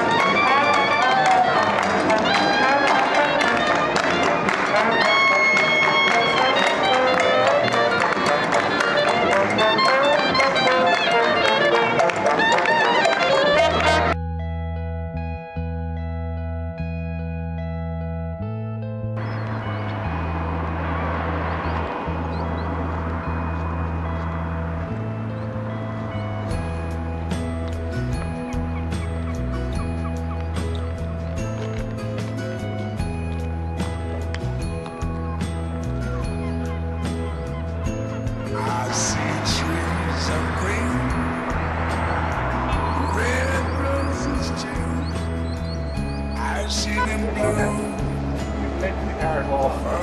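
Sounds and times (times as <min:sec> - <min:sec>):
clarinet: 0:00.0 - 0:14.2
trombone: 0:00.0 - 0:14.2
trumpet: 0:00.0 - 0:14.2
low bass notes music: 0:13.3 - 0:50.0.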